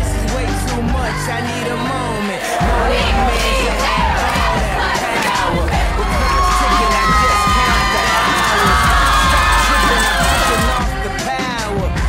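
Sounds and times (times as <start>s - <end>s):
music with steady bass: 0.0s - 12.0s
crowd cheering and shouting: 0.3s - 12.0s.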